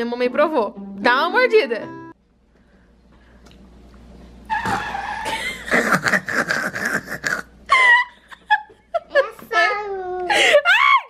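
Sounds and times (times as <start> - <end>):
young girl laughing: 4.7 - 11.0
choppy breathy laughter: 5.1 - 8.2.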